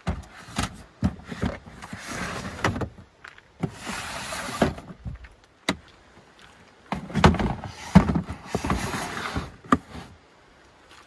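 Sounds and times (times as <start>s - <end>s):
plastic bins scraping on wooden floor: 0.0s - 3.0s, 3.6s - 5.0s, 6.9s - 10.2s
plastic bins knocking: 6.9s - 8.9s.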